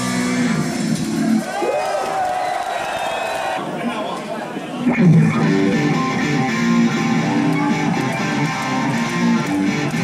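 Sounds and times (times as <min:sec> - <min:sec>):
hard rock band playing live: 0:00.0 - 0:01.4, 0:04.9 - 0:10.0
electric guitar: 0:00.0 - 0:01.5, 0:04.8 - 0:10.0.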